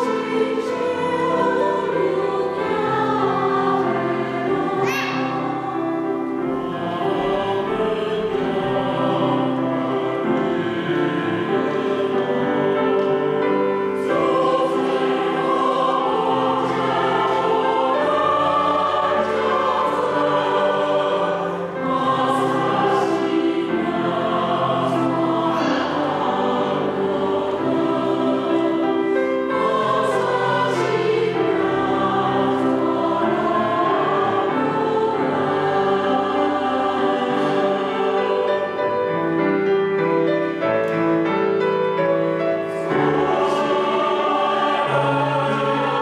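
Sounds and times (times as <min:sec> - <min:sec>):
choir singing a hymn: 0:00.0 - 0:46.0
grand piano accompaniment: 0:00.0 - 0:46.0.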